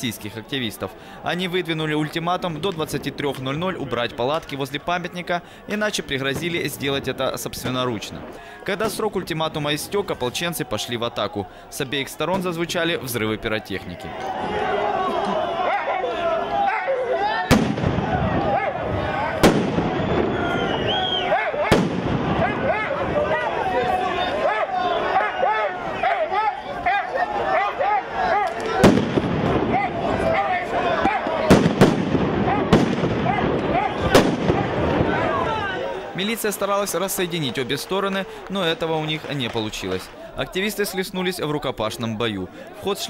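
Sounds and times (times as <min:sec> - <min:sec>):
crowd of men shouting: 0:13.4 - 0:38.8
firecrackers banging: 0:17.5 - 0:24.2, 0:28.4 - 0:40.4.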